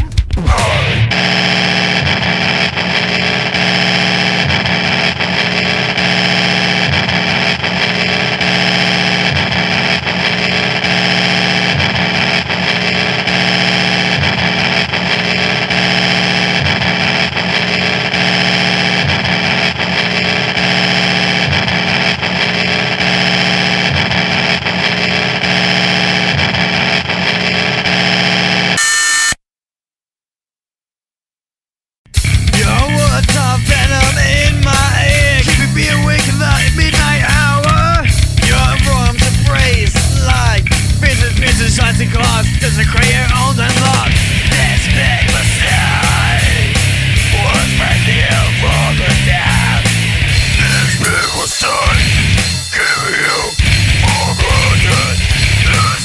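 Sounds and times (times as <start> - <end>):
distorted noise drone: 0.4 - 28.8, 32.2 - 56.0.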